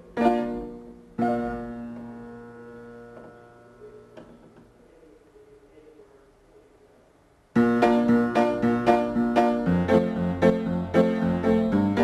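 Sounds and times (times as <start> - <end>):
piano chords: 0.0 - 4.4, 7.6 - 12.0.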